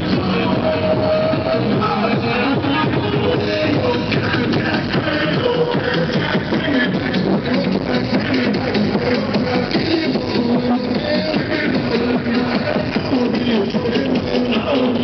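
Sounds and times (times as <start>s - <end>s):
loud distorted dance music: 0.0s - 15.0s.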